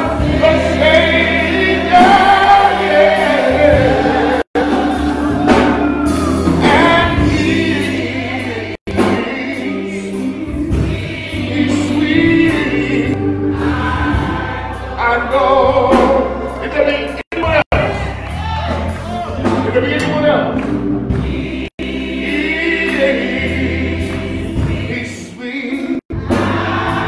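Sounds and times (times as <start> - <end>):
choir and congregation singing: 0.0 - 27.0
instrumental accompaniment: 0.0 - 27.0.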